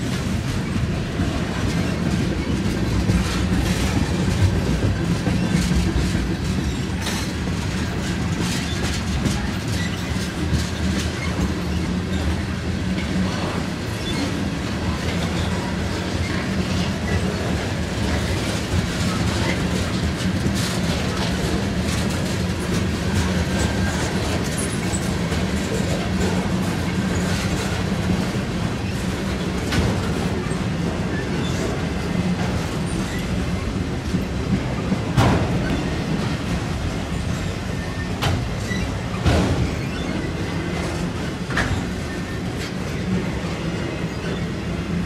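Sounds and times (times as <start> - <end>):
clicks of train wheels: 0.0 - 45.0
train wheels rumbling on rail: 0.0 - 45.0.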